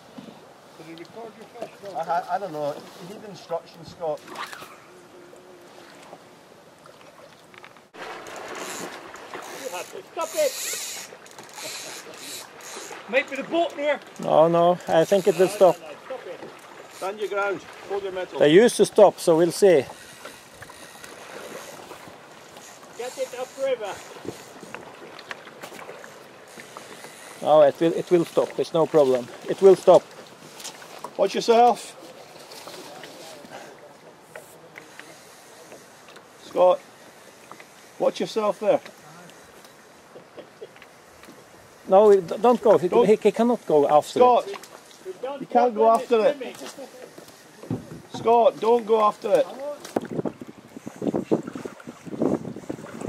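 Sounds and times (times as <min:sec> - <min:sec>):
river current rushing: 0:00.0 - 0:53.0
water lapping against boat: 0:00.0 - 0:53.0
faint knocks: 0:47.6 - 0:48.3
wind buffeting microphone: 0:49.9 - 0:53.0.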